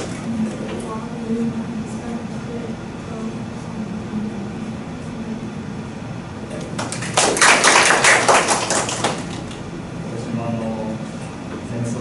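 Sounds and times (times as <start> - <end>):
audience applause: 6.8 - 9.5.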